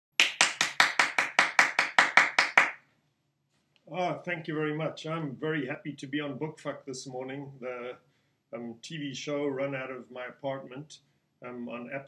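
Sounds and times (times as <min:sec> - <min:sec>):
hand clapping: 0:00.1 - 0:02.8.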